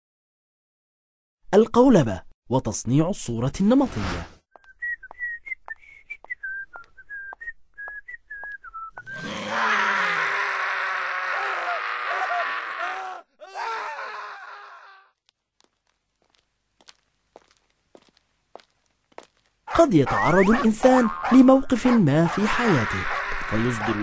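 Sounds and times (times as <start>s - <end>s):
man whistling a jaunty tune: 4.6s - 9.2s
man screaming in pain: 9.2s - 15.1s
light footsteps: 15.2s - 19.6s
dog snarling: 20.1s - 24.0s.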